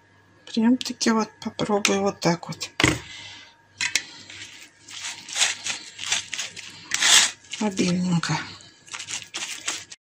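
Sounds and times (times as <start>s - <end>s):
wet cloth crumpling in metal bowl: 4.2s - 10.0s.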